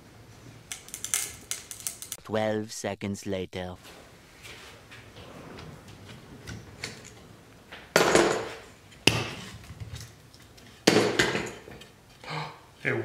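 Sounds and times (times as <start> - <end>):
clamps knocking on workbench: 7.8 - 9.5, 10.8 - 11.8.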